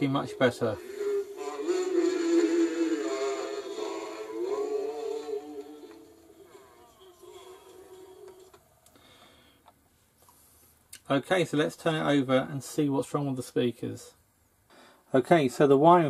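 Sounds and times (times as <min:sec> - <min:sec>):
record playing at wrong speed: 0:00.0 - 0:08.8.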